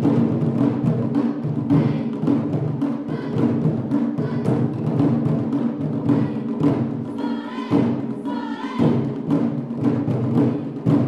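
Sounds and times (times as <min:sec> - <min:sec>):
taiko drumming: 0:00.0 - 0:11.0.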